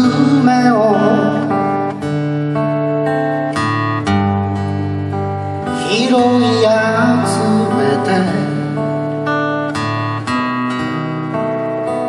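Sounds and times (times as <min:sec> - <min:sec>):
acoustic guitar strummed chords: 0:00.0 - 0:12.0.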